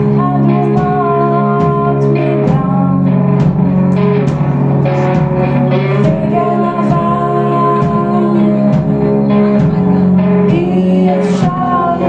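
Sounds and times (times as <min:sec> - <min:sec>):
woman singing: 0:00.0 - 0:03.4, 0:05.7 - 0:12.0
drum kit strikes: 0:00.0 - 0:11.9
electric guitars playing chords: 0:00.0 - 0:12.0.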